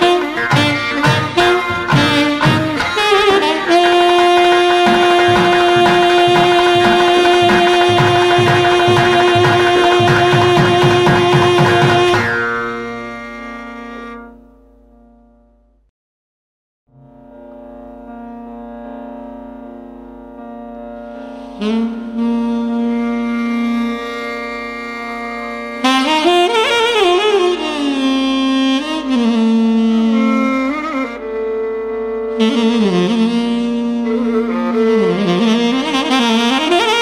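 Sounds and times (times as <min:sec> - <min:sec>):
alto saxophone playing: 0:00.0 - 0:14.6, 0:21.2 - 0:37.0.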